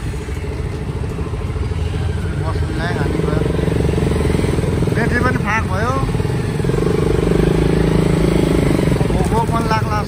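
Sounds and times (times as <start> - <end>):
motorcycle engine running: 0.0 - 10.0
street traffic: 0.0 - 10.0.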